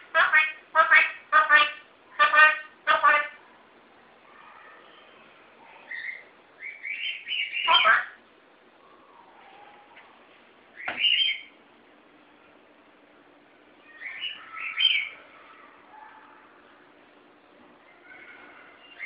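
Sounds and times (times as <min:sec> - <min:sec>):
parrot calling: 0:00.0 - 0:03.4, 0:05.8 - 0:08.2, 0:10.8 - 0:11.6, 0:13.8 - 0:16.3.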